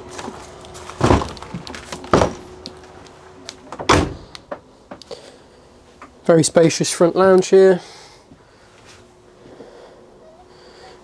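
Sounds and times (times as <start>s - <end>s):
heavy footsteps thudding: 0.8s - 2.6s.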